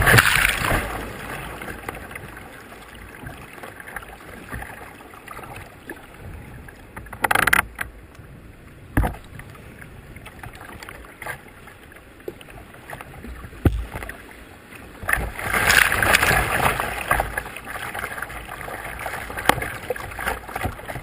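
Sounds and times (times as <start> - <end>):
water slapping on hull: 0.0 - 8.0, 8.8 - 21.0
wave splashing over bow: 0.0 - 21.0.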